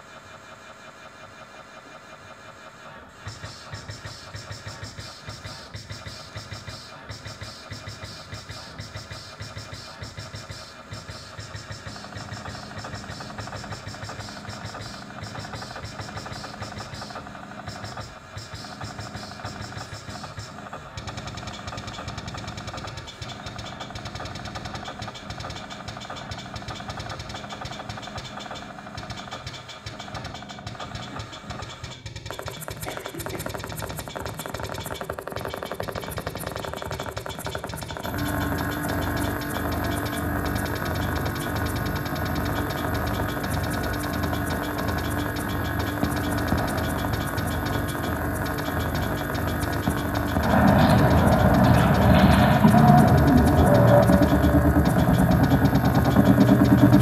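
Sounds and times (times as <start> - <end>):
experimental electronic music: 37.3 - 57.0
held electronic tones: 38.1 - 57.0.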